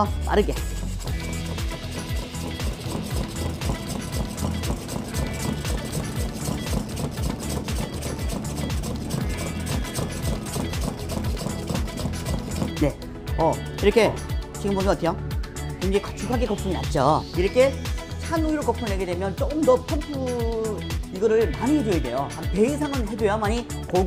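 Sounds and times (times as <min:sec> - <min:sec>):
background music: 0:00.0 - 0:24.0
plunger milk frother pumping: 0:00.6 - 0:12.9.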